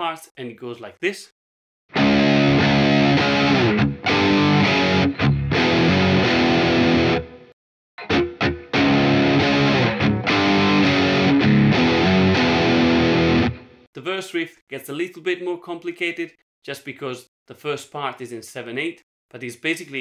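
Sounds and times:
distorted electric guitar riff: 1.9 - 13.8.

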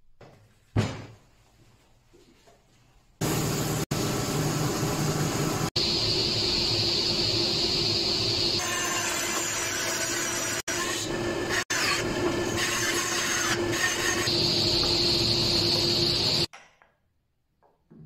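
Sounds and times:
knock on workbench: 0.8 - 1.2.

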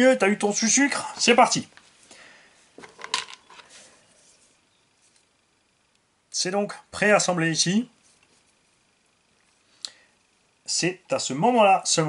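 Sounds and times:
plastic parts clicking and clattering: 2.8 - 3.7.

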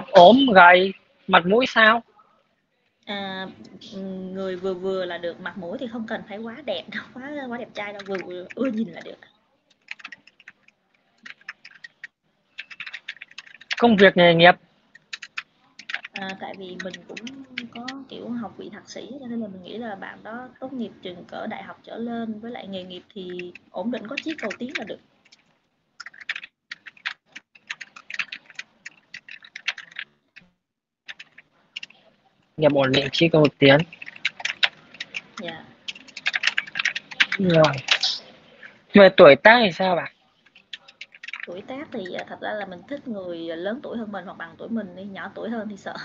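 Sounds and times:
typing on computer keyboard: 7.8 - 9.1, 9.7 - 14.1, 14.9 - 18.1, 22.8 - 30.5, 31.1 - 32.0, 32.6 - 38.2, 40.4 - 42.4.

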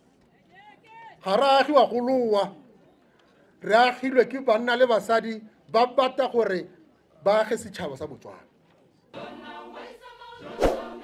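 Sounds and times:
speech: 0.3 - 2.6, 3.6 - 8.5
choir singing: 9.1 - 11.0.

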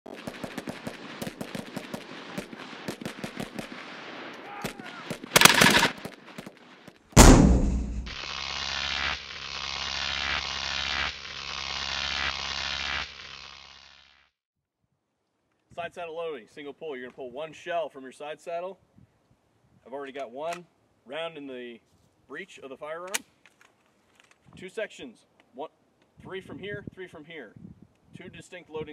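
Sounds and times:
rapid gunfire-like cracks: 0.1 - 6.6, 7.2 - 8.2
heavy impact: 7.2 - 8.2
short loud burst: 7.2 - 9.2.

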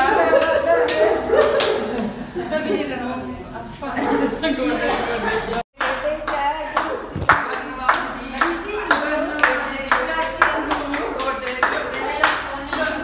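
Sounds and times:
group hand clapping in rhythm: 0.0 - 2.0, 5.5 - 13.0.

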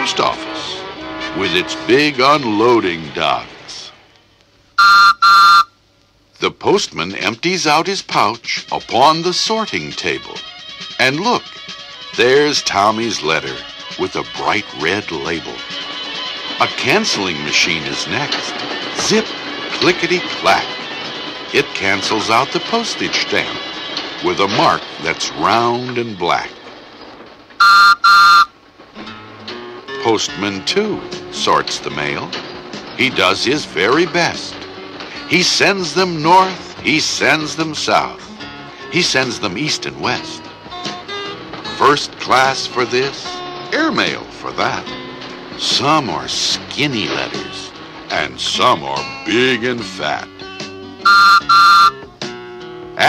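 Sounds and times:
whistle toots: 4.8 - 5.8, 27.6 - 28.5, 51.1 - 52.0.

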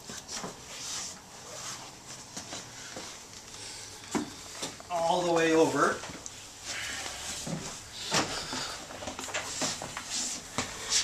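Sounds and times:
clothing rustle: 0.0 - 11.0.

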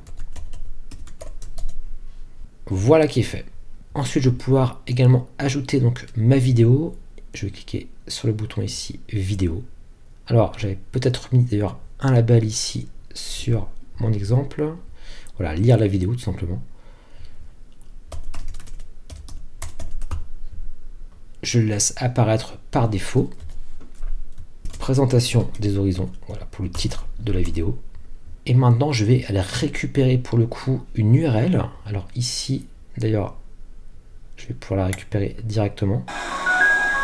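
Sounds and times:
typing on computer keyboard: 0.0 - 1.8, 18.1 - 20.3.

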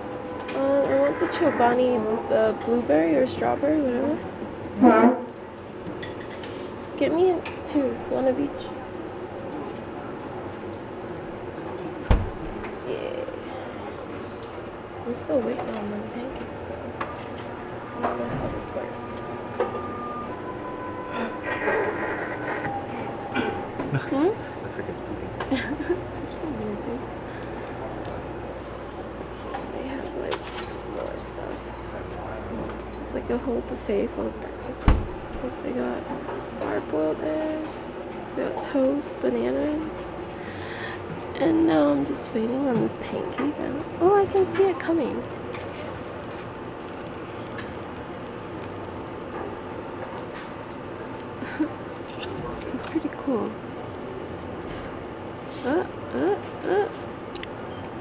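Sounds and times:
pancake machine hum: 13.2 - 34.3, 39.9 - 58.0
faint steady tones: 14.7 - 52.0.

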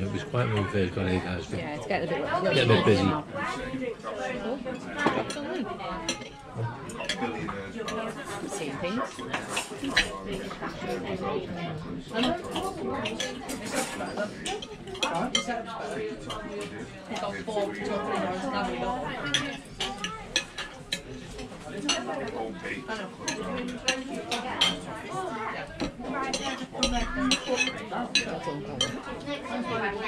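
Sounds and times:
restaurant chatter: 0.0 - 30.0
cutlery clinking on a ceramic plate: 9.2 - 10.5, 12.2 - 15.5, 19.2 - 22.1, 23.2 - 24.9, 25.8 - 29.1.

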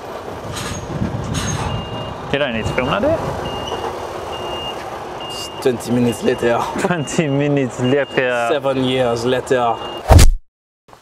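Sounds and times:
lorry diesel engine running: 0.0 - 10.0
reversing beep: 1.4 - 9.1, 9.7 - 10.1.

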